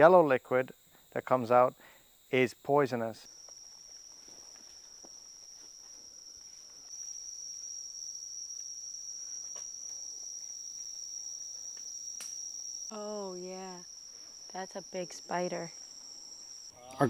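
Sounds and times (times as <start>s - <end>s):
insects droning: 0.0s - 17.0s.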